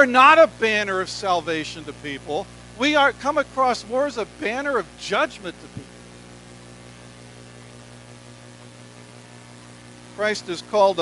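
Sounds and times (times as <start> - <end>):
electrical mains hum: 0.0 - 11.0
faint steady hiss: 0.0 - 11.0.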